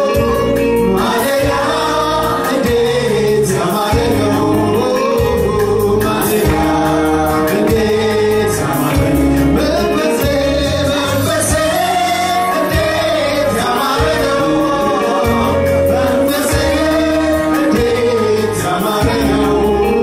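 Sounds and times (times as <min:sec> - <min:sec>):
electronic keyboard accompaniment: 0:00.0 - 0:20.0
man and women singing gospel: 0:00.0 - 0:20.0
steady beat: 0:00.0 - 0:20.0.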